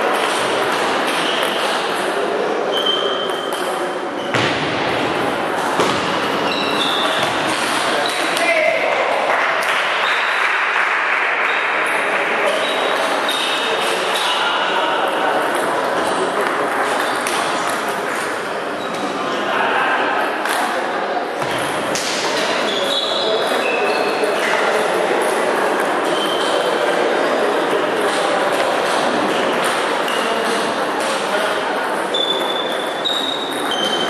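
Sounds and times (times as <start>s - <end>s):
sports hall din: 0.0s - 34.0s.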